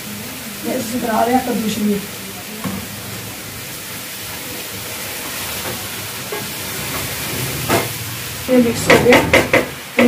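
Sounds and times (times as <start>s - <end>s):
food sizzling in a pot: 0.0s - 10.0s
wooden spoon knocking pot: 8.8s - 10.0s.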